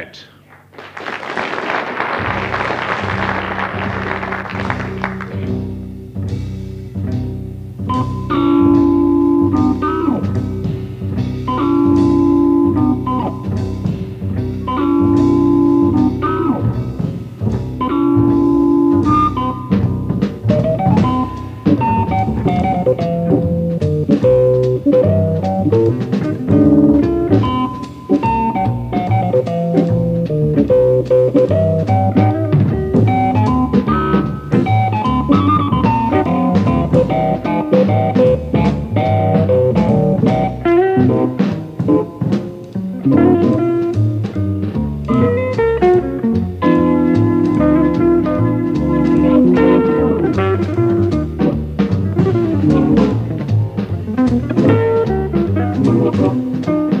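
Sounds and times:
bass: 0:00.0 - 0:57.0
drums: 0:00.0 - 0:57.0
hammond organ: 0:01.3 - 0:57.0.

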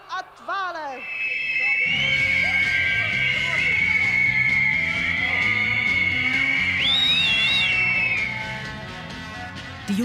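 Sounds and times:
shrill whistles blowing: 0:00.9 - 0:09.0.

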